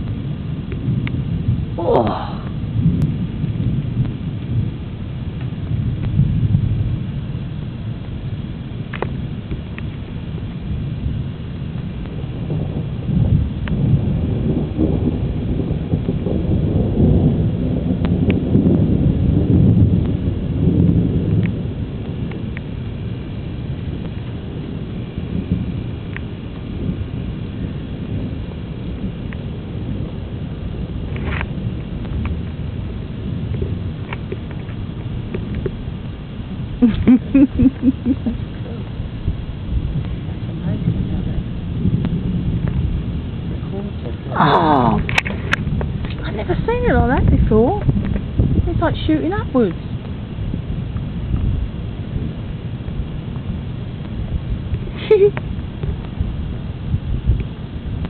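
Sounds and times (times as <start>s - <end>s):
thunder rumbling: 0.0s - 58.0s.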